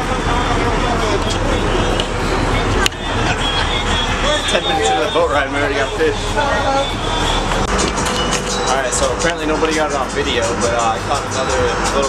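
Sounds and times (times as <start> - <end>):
boat engine running: 0.0 - 12.0
indistinct voices: 0.0 - 12.0.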